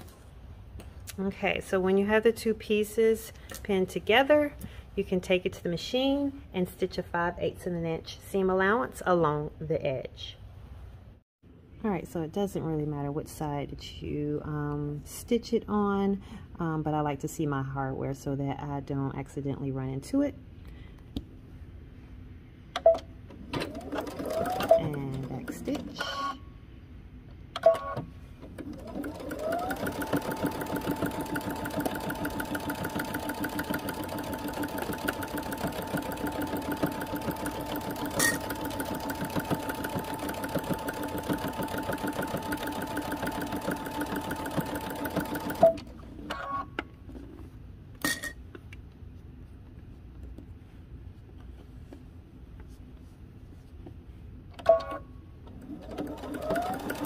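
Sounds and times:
electric sewing machine stitching: 23.5 - 26.0, 28.6 - 45.9, 55.6 - 57.0.

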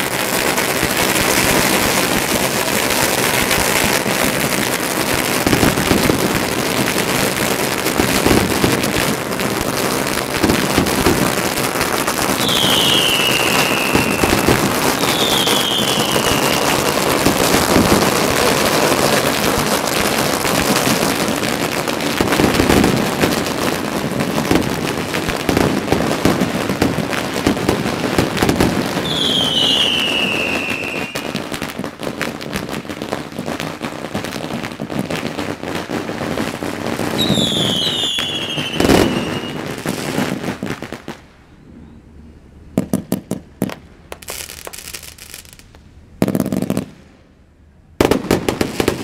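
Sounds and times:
firecrackers crackling: 0.0 - 41.3, 42.8 - 47.3, 48.0 - 49.0
high falling whistles: 12.4 - 16.8, 29.0 - 31.4, 37.2 - 39.6.

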